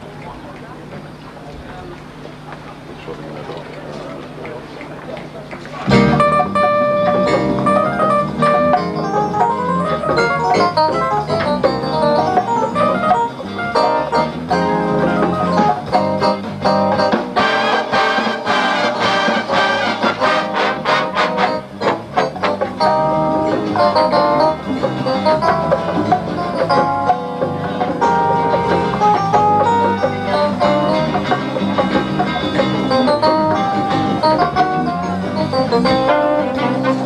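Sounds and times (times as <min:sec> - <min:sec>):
jazz big band playing: 0:03.4 - 0:37.0.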